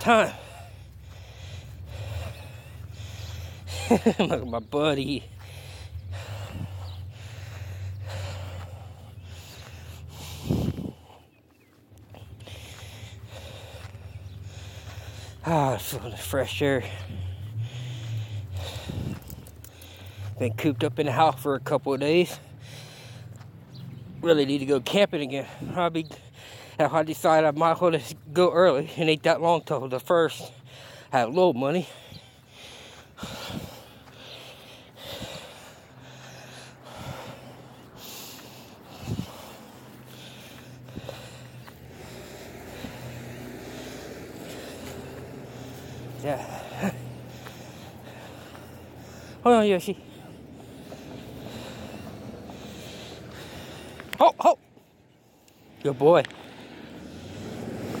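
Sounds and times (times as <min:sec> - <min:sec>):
person breathing heavily: 0:00.0 - 0:58.0.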